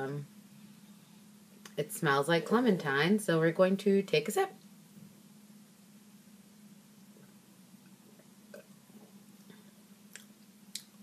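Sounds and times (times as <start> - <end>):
low steady hum: 0.0 - 11.0
person sipping and swallowing: 7.1 - 10.9.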